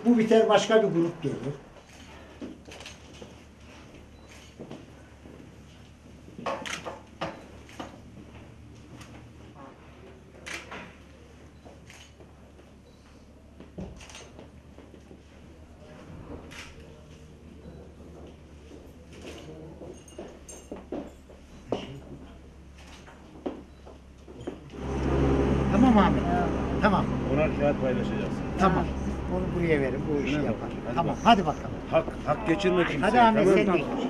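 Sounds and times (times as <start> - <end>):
steady low hum: 21.0 - 34.0.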